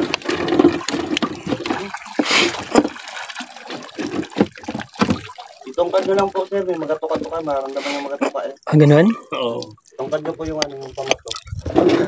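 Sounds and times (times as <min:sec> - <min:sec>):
water lapping against boat: 0:00.0 - 0:08.7, 0:09.6 - 0:12.0.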